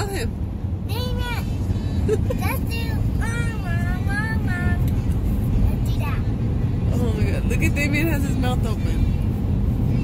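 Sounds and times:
road and engine noise in vehicle: 0.0 - 10.0.

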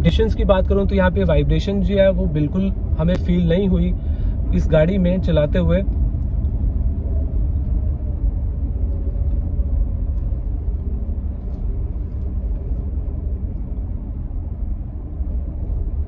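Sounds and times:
car cabin road and engine rumble: 0.0 - 16.0.

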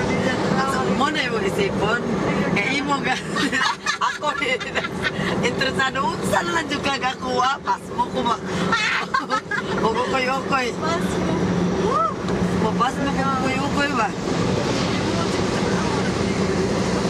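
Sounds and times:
people talking: 0.0 - 16.8
engine and road hum: 0.0 - 17.0.

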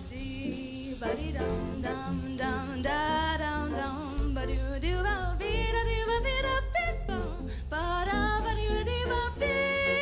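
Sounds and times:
jazz combo playing: 0.0 - 10.0
woman singing jazz: 0.0 - 10.0.

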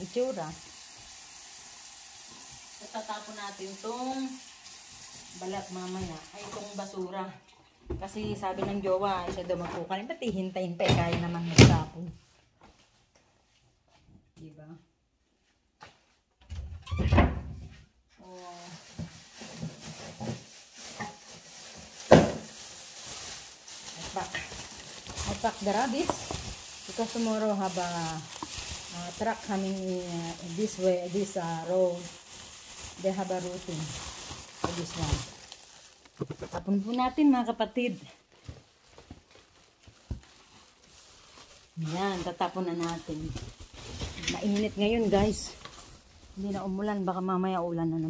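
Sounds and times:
plastic bag rustling: 2.8 - 7.0, 18.2 - 48.0.

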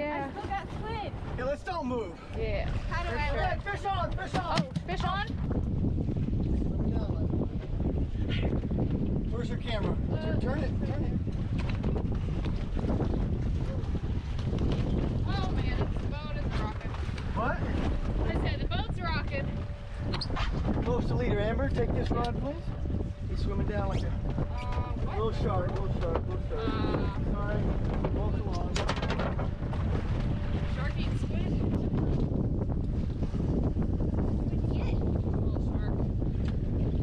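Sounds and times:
wind blowing on microphone: 0.0 - 37.0.

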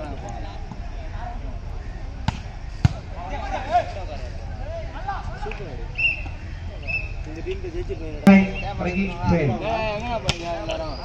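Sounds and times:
players shouting: 8.3 - 9.8.

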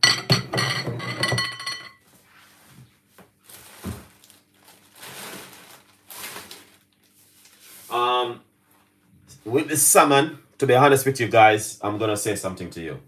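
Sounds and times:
glass dish clinking: 0.0 - 2.0
kitchen handling noises: 0.0 - 2.0.

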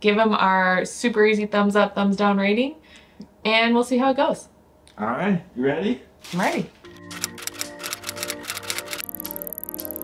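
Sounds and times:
background music with sustained notes: 6.8 - 10.0
typewriter keys clacking: 7.0 - 10.0.

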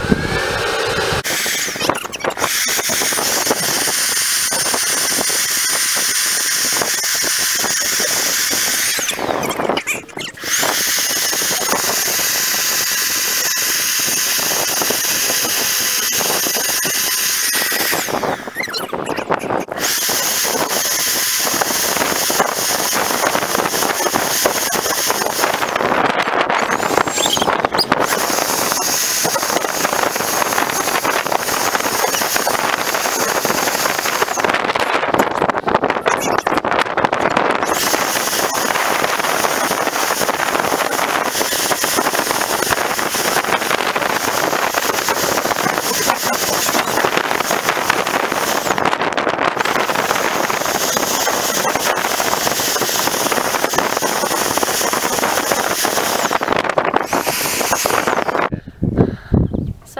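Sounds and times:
leaf blower running: 0.0 - 18.9, 19.6 - 35.2, 37.6 - 58.5.

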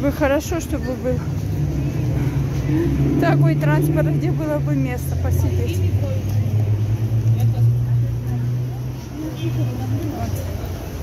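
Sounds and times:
street traffic rumble: 0.0 - 11.0
vehicle engine humming: 0.0 - 11.0.

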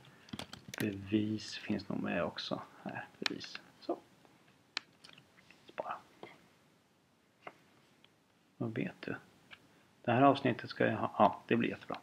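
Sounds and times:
soft whispered voice: 5.6 - 6.4.

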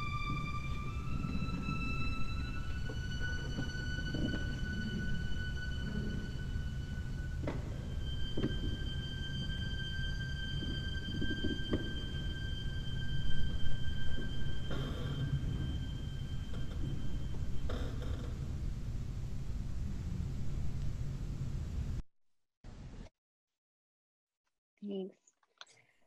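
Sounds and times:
low rumble: 0.0 - 22.0.

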